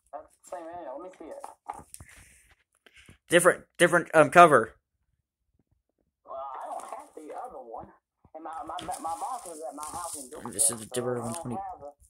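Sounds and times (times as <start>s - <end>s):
person talking quietly: 6.3s - 12.0s.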